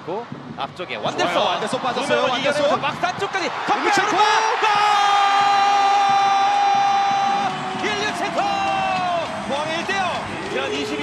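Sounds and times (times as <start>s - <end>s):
stadium crowd cheering: 1.2s - 11.0s.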